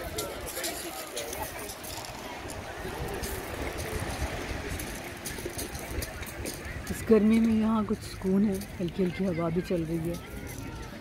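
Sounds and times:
distant chatter: 0.0s - 11.0s
small waves on pebbles: 0.0s - 11.0s
wind rumbling on microphone: 0.0s - 11.0s.

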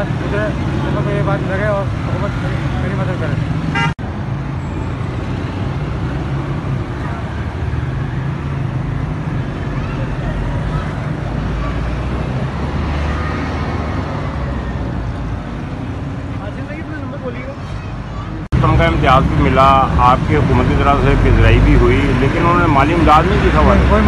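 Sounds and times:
road traffic rumble: 0.0s - 24.0s.

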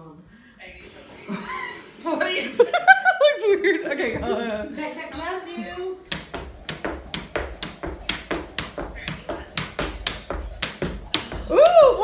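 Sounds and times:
jump rope slapping floor: 6.0s - 12.0s
feet landing on floor: 6.1s - 12.0s.

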